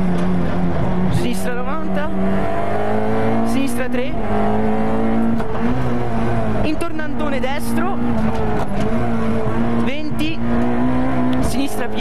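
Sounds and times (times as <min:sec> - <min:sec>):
car engine at high revs: 0:00.0 - 0:12.0.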